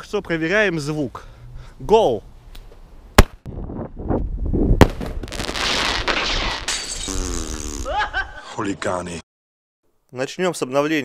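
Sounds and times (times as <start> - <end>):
flare pistol crack: 3.2 - 3.5, 4.8 - 6.7
flare hissing: 4.8 - 6.7.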